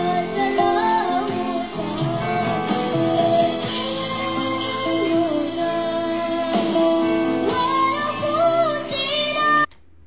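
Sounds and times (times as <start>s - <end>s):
child singing: 0.0s - 9.7s
instrumental backing music: 0.0s - 9.8s.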